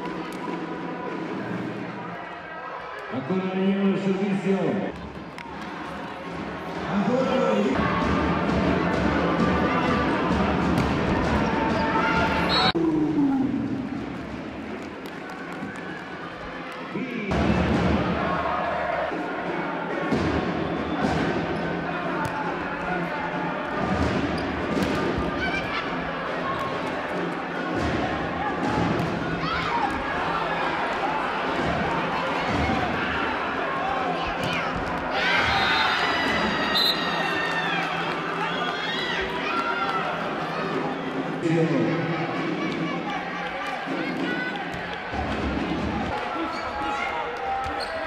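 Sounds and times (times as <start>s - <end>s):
crowd noise and voices: 0.0s - 48.0s.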